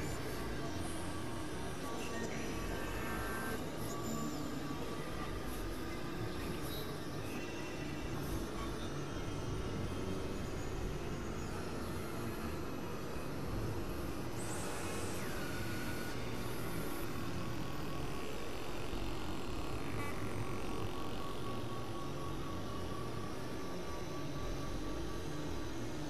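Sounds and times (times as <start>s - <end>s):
experimental noise drone: 0.0s - 26.0s.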